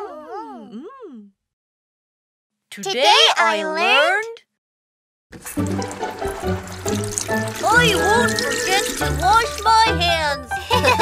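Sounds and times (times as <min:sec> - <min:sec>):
backing music: 0:05.4 - 0:11.0.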